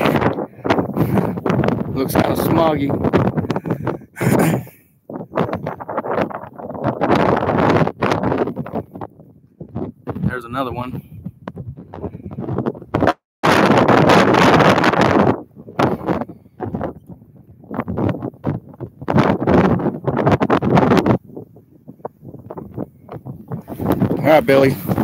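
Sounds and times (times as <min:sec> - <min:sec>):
wind buffeting microphone: 0:00.0 - 0:25.0.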